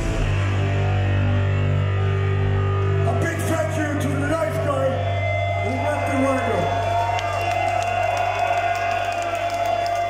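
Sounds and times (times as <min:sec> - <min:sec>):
amplified guitars and bass drone: 0:00.0 - 0:07.2
crowd cheering: 0:00.0 - 0:10.0.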